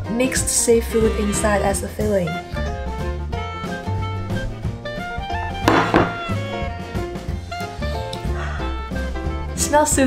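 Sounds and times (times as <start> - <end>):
music with bass line: 4.7 - 7.3.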